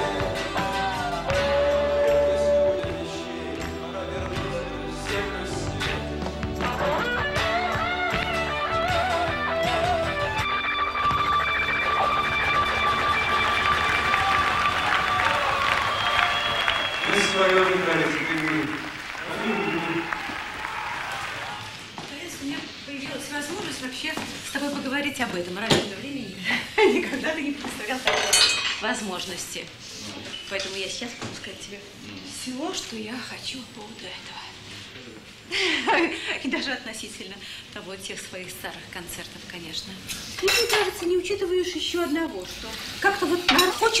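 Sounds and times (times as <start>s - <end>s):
rock band with lead guitar: 5.9s - 14.1s
indistinct conversation: 16.8s - 28.1s
dishes and cutlery clinking: 28.0s - 29.0s, 40.1s - 41.1s, 43.5s - 44.0s.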